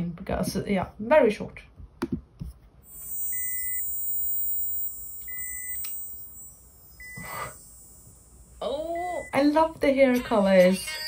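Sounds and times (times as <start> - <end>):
short electronic beeps: 2.9 - 9.5
high-pitched electronic whine: 2.9 - 10.2.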